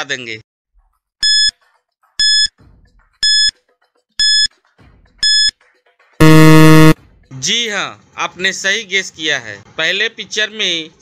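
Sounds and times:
short electronic beeps: 1.2s - 1.5s, 2.2s - 2.5s, 3.2s - 3.5s, 4.2s - 4.5s, 5.2s - 5.5s, 6.2s - 7.0s.

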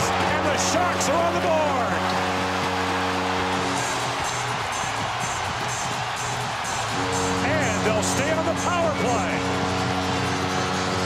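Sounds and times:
arena goal horn blaring: 0.0s - 4.4s, 6.9s - 11.0s
arena music with a beat: 0.0s - 11.0s
crowd cheering: 0.0s - 11.0s.

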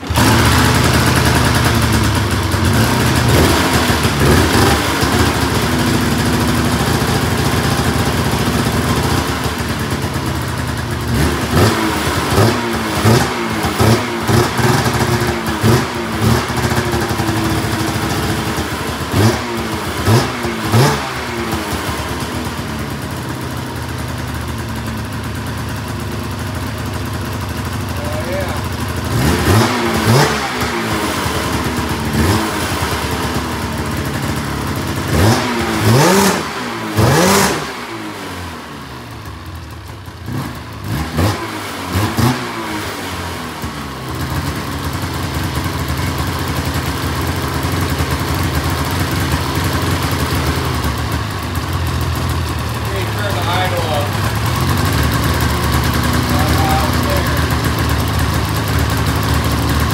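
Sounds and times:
snowmobile engine idling: 0.0s - 59.9s.

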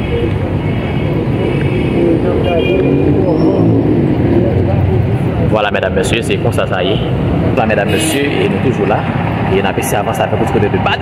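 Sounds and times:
motor vehicle rumbling: 0.0s - 11.0s.

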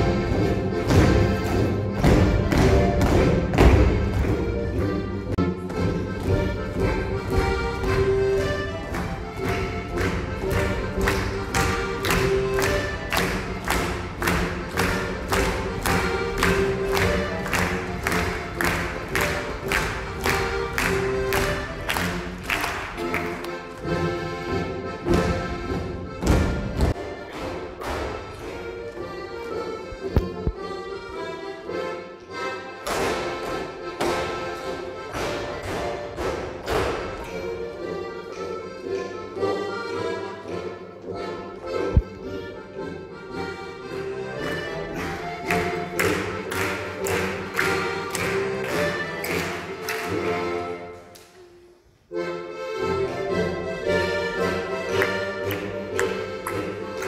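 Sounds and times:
feet stamping on wooden stage: 0.0s - 21.9s
accordion folk-dance music: 0.0s - 57.0s.

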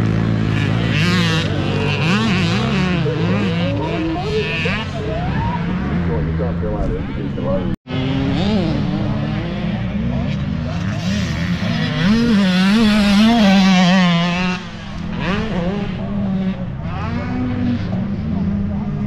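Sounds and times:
dirt bike engines revving: 0.0s - 19.0s.

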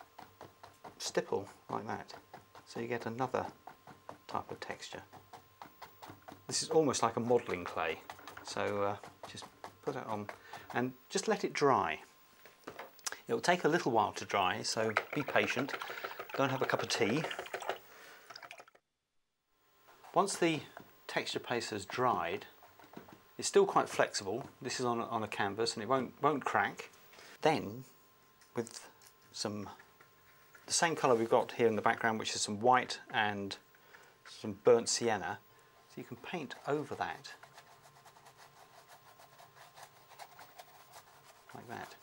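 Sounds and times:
paintbrush scrubbing on canvas: 0.0s - 11.4s, 30.2s - 32.4s, 35.7s - 42.0s
low room hum: 0.0s - 18.8s, 19.5s - 42.0s.

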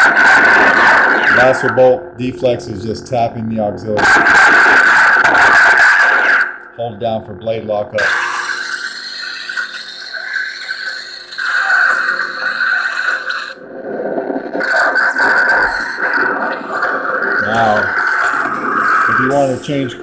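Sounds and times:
crackling sizzle: 0.0s - 1.8s, 4.0s - 6.8s, 8.0s - 20.0s
lightsaber blade hum: 8.0s - 20.0s.

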